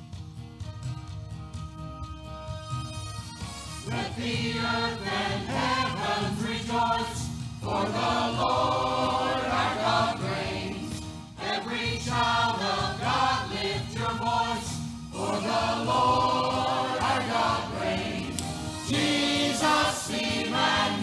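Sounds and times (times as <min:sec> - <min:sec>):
church choir singing: 0:03.8 - 0:21.0.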